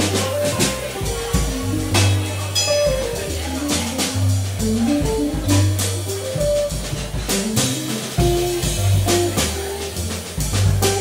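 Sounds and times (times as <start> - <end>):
bass notes: 0.0 - 11.0
drums: 0.0 - 11.0.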